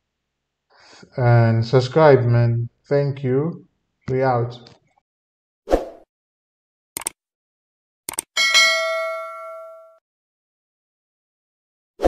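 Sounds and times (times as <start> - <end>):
mouse clicks: 8.1 - 8.3
bright bell ding: 8.4 - 10.0.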